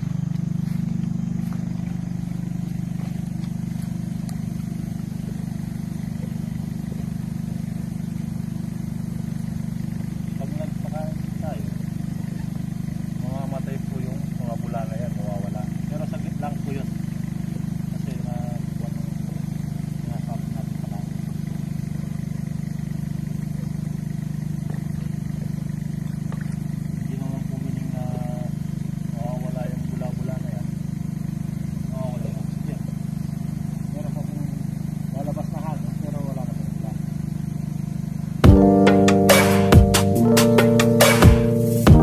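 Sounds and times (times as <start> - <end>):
blower motor hum: 0.0 - 42.0.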